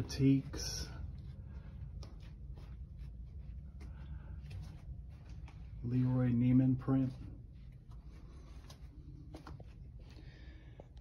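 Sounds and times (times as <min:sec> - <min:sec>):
low room rumble: 0:00.0 - 0:11.0
soft footsteps: 0:00.0 - 0:11.0.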